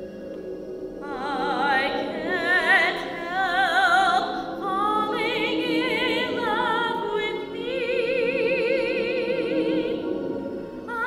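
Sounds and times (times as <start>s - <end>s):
soprano singing with vibrato: 1.0s - 11.0s.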